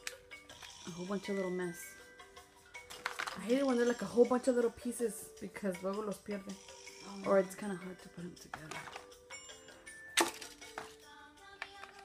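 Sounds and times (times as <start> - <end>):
faint music with held notes: 0.0 - 12.0
plastic capsule clicks: 2.9 - 3.6, 8.6 - 9.1, 10.2 - 12.0.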